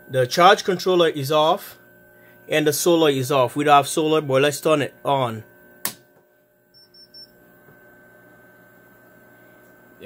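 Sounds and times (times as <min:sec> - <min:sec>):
faint electrical hum: 0:00.0 - 0:10.0
high-pitched electronic beeps: 0:06.8 - 0:07.3.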